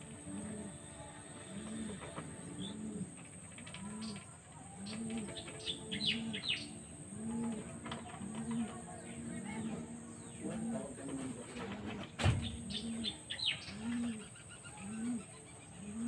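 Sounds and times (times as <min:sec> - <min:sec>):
bird chirps: 0:00.0 - 0:16.0
dove cooing: 0:00.0 - 0:16.0.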